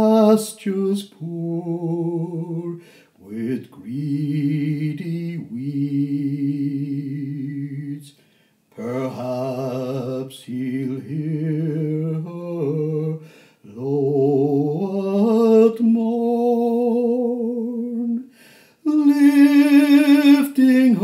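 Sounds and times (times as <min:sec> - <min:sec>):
person singing with vibrato: 0:00.0 - 0:21.0.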